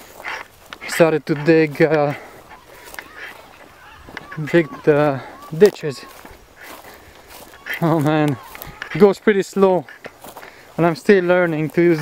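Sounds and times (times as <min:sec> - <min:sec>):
distant bird calls: 0:00.0 - 0:12.0
man's voice: 0:00.8 - 0:10.0, 0:10.7 - 0:12.0.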